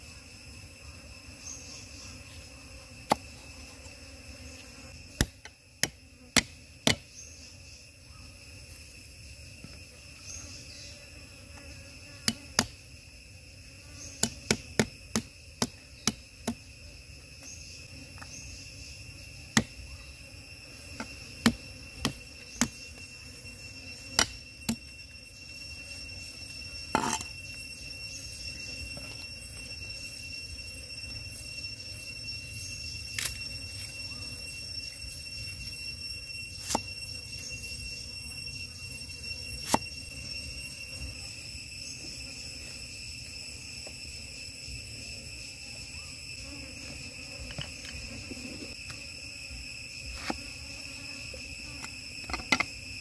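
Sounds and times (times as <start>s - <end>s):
crickets chirring: 0.0s - 53.0s
high-pitched insect drone: 0.0s - 53.0s.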